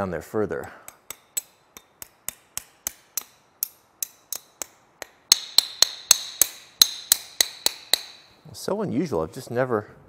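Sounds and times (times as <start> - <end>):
hammer tapping metal: 0.6 - 8.3.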